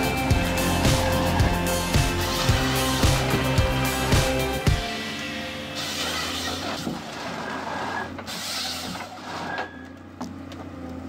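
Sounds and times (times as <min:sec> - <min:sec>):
harvester engine under load: 0:00.0 - 0:11.0
wood cutting and processing: 0:00.0 - 0:11.0.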